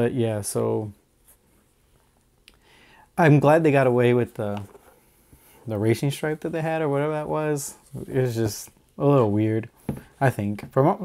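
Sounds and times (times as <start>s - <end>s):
handling football boot: 7.8s - 10.8s.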